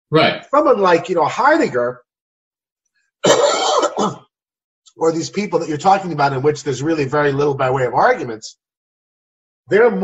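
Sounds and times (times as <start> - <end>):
man coughing: 3.2 - 4.3.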